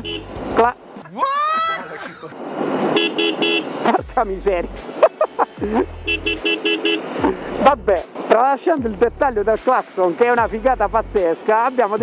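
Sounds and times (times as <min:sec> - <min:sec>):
motorcycle horn toots: 0:00.0 - 0:00.4, 0:03.0 - 0:03.8, 0:06.1 - 0:07.2.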